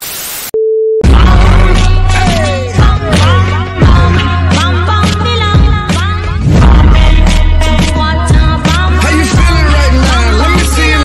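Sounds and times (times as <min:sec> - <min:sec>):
tv static hiss: 0:00.0 - 0:00.5
loud music with heavy bass: 0:01.0 - 0:11.0.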